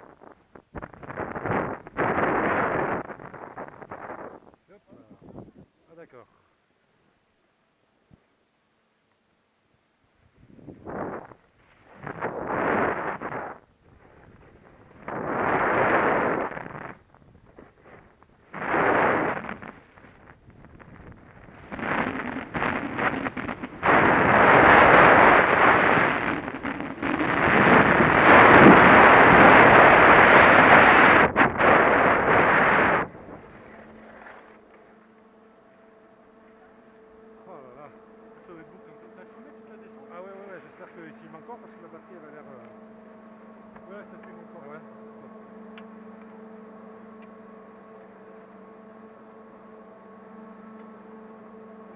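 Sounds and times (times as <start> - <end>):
wind buffeting microphone: 0.0 - 5.7, 10.3 - 34.4
skis scraping over snow: 10.7 - 34.9.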